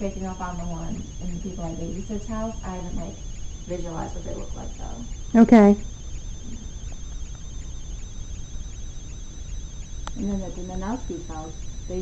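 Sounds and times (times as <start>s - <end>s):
faint high-pitched whine: 0.0s - 12.0s
low hum: 0.0s - 12.0s.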